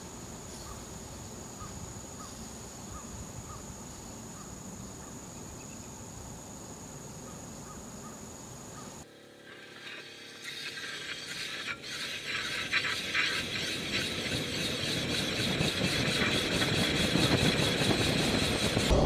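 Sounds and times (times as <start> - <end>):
wind: 0.0 - 19.0.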